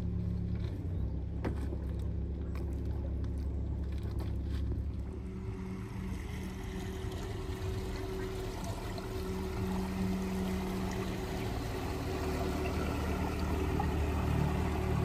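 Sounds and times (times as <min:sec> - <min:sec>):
motor boat engine rumbling: 0:00.0 - 0:15.0.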